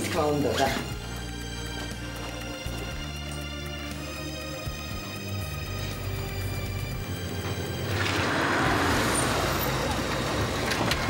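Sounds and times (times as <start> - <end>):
tyres rolling: 5.4 - 11.0.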